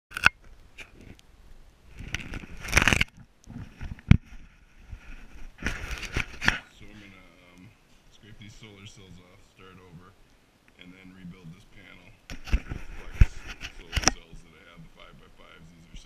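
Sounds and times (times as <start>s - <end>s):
camera handling noise: 2.0s - 6.7s, 12.3s - 14.3s
man speaking in low voice: 6.7s - 10.2s, 10.8s - 12.2s, 12.8s - 16.0s.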